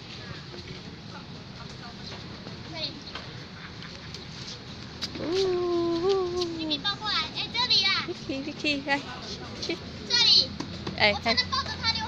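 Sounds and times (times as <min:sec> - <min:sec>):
small dog whining: 0:05.2 - 0:06.8.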